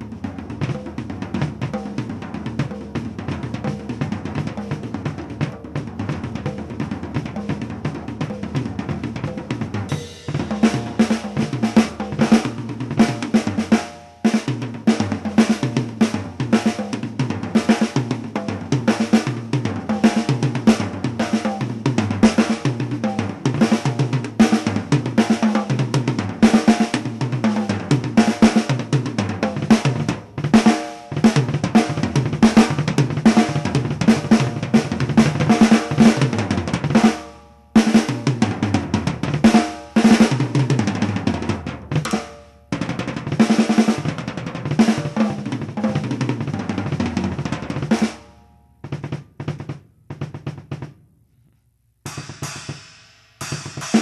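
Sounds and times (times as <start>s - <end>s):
drum kit fast fills: 0.0s - 51.0s, 52.1s - 54.0s.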